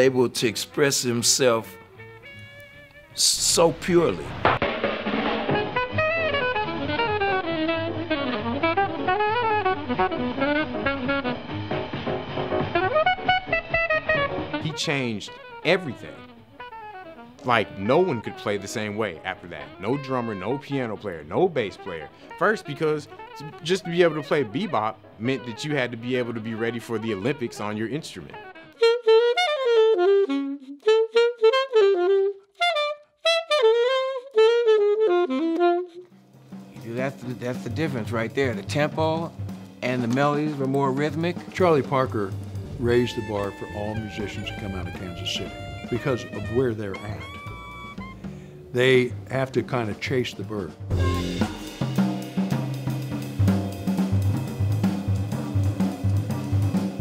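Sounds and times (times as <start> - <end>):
alto saxophone playing jazz: 0.6 - 57.0
drum kit on cymbals and snare: 3.2 - 6.9, 36.2 - 57.0
walking bass line: 37.7 - 52.0.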